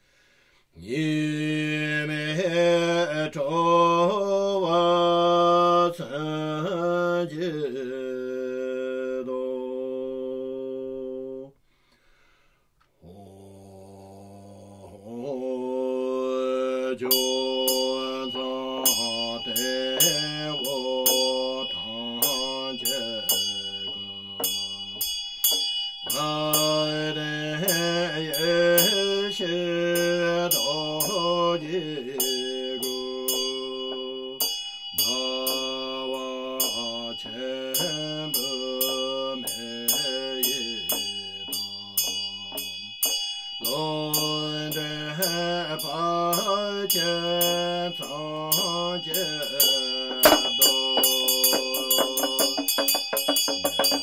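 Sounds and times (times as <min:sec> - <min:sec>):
man chanting: 0:00.8 - 0:11.5, 0:13.0 - 0:25.1, 0:26.1 - 0:43.0, 0:43.6 - 0:54.0
bell ringing: 0:17.1 - 0:29.3, 0:30.0 - 0:54.0
light rhythmic strokes: 0:17.1 - 0:54.0.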